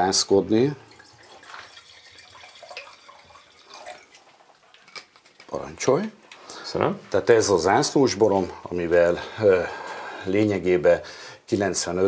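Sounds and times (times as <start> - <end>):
wine pouring into a glass: 0.0 - 5.4.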